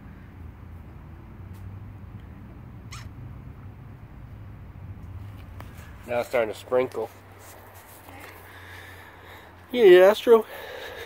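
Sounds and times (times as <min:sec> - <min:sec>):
wolf pup squeaking: 0:02.9 - 0:03.2.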